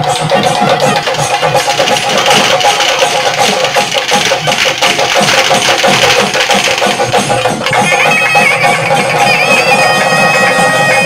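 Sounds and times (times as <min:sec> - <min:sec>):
drums in fast rhythm: 0:00.0 - 0:11.0.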